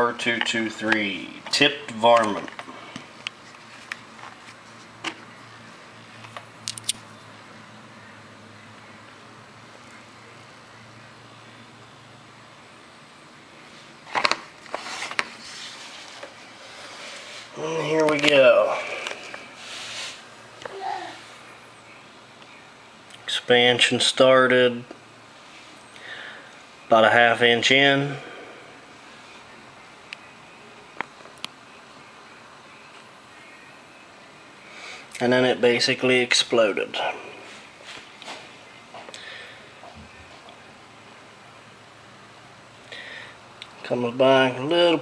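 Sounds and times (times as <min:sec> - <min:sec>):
faint room hum: 0:00.0 - 0:45.0.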